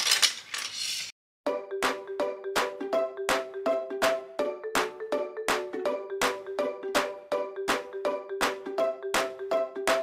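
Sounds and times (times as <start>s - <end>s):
plastic pieces clattering: 0.0s - 1.1s
background music with sharp beat: 1.5s - 10.0s.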